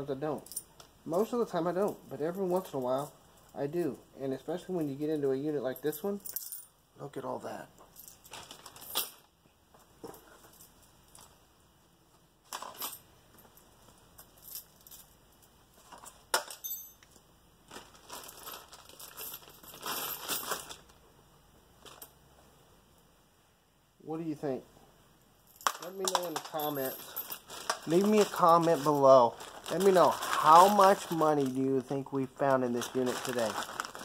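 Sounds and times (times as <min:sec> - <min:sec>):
plastic bag crinkling: 0:08.3 - 0:08.9, 0:17.6 - 0:21.0, 0:25.7 - 0:34.0
coins clinking: 0:16.3 - 0:17.1, 0:25.5 - 0:31.6.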